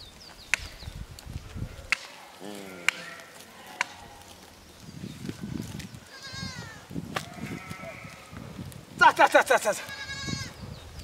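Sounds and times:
sheep bleating: 0:02.4 - 0:04.3, 0:06.1 - 0:08.4, 0:09.4 - 0:10.6.

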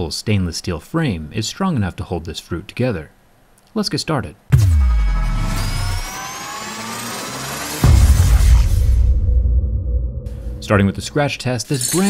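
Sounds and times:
rising sweep of tones: 0:04.8 - 0:11.3
deep boom: 0:07.8 - 0:11.4.

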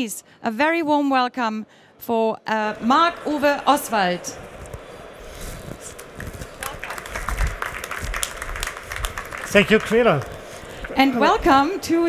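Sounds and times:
hands clapping: 0:05.8 - 0:11.0.

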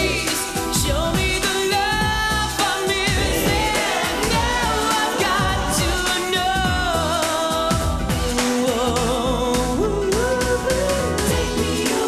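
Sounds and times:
backing track with steady beat: 0:00.0 - 0:12.0
male voices singing pop song: 0:00.0 - 0:12.0.

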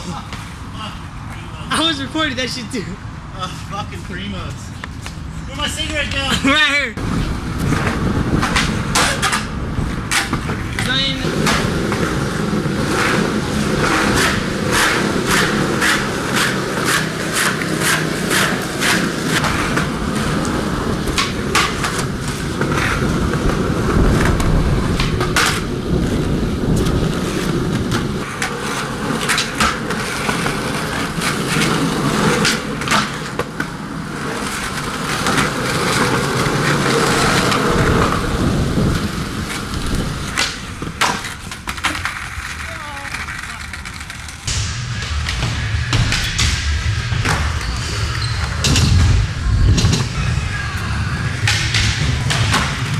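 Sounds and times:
skateboard wheels rolling on asphalt: 0:00.0 - 0:44.5, 0:45.1 - 0:52.9
skateboard clacking on ground: 0:07.0 - 0:44.5.

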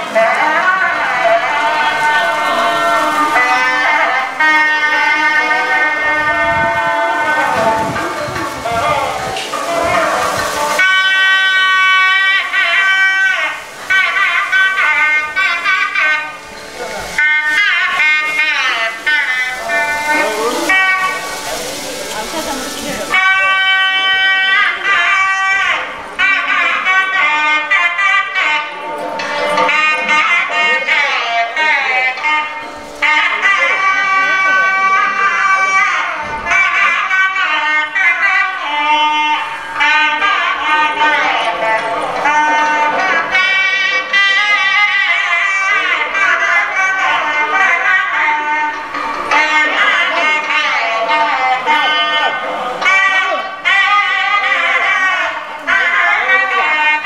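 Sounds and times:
double-reed wind instrument melody: 0:00.0 - 0:57.0
bright hiss: 0:01.4 - 0:24.4.

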